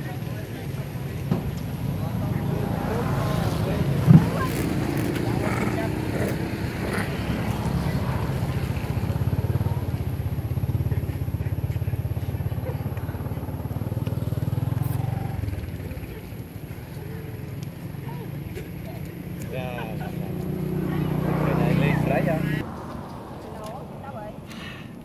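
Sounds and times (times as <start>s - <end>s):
vehicle engine throbbing: 0.0s - 24.3s.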